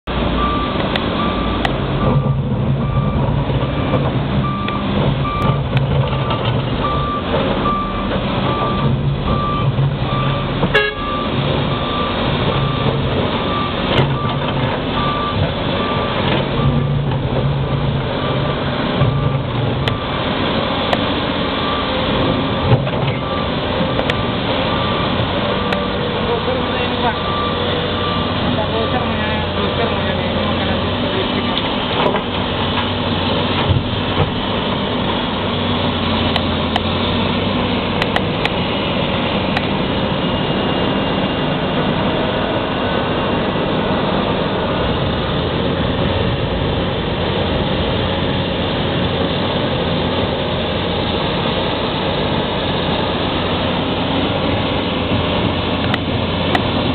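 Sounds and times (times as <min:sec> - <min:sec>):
excavator diesel engine labouring: 0:00.1 - 0:56.9.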